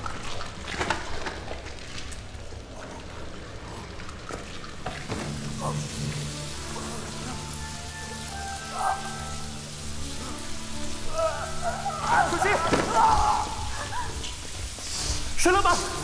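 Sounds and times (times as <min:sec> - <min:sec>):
crackling hiss: 0:00.0 - 0:16.0
low sustained music tones: 0:00.0 - 0:16.0
higher held music notes: 0:05.1 - 0:16.0.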